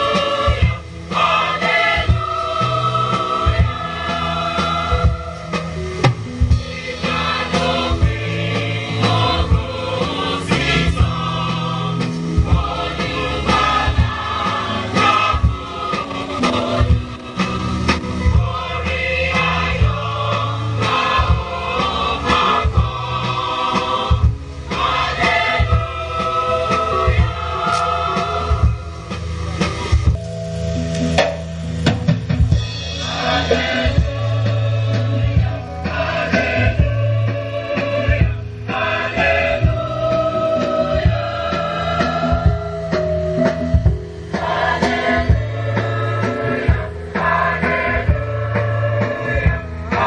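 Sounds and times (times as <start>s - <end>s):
choir singing a hymn: 0.0s - 30.2s, 32.4s - 50.0s
sustained chord tones: 0.0s - 49.9s
drum kit hits and fills: 0.0s - 50.0s
low bass notes: 0.0s - 50.0s
percussion beats: 0.0s - 50.0s.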